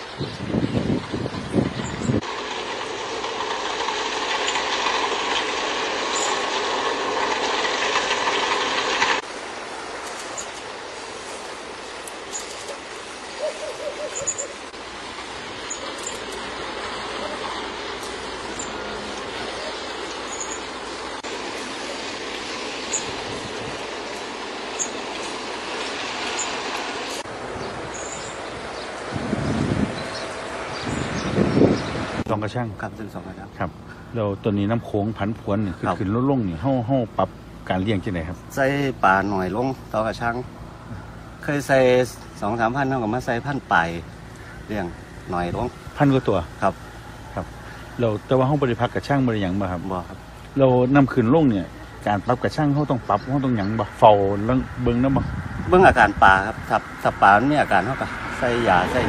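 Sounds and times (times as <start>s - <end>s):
wind noise on microphone: 0.0s - 2.3s, 22.9s - 23.9s, 27.4s - 32.3s, 54.4s - 57.2s
wind gusts buffeting microphone: 0.0s - 2.4s, 22.8s - 24.6s, 27.2s - 32.9s, 53.0s - 59.0s
steady mechanical noise: 0.0s - 59.0s.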